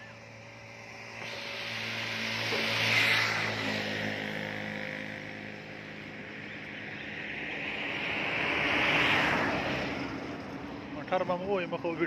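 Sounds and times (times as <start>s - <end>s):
engine running at low speed: 0.0s - 12.0s
rushing noise: 0.2s - 5.2s.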